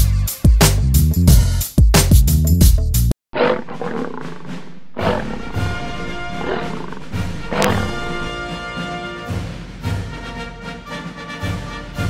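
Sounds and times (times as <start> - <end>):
lion roaring: 3.4 - 8.4
theme music: 4.5 - 12.0.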